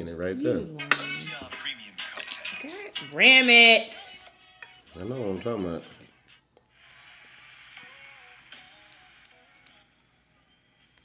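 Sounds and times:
song through phone speaker: 0:02.7 - 0:11.0.

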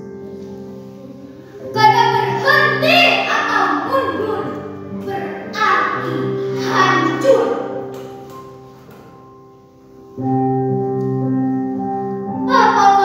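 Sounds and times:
music of long held chords: 0:00.0 - 0:13.0
girl reciting: 0:01.6 - 0:07.8, 0:12.4 - 0:13.0.

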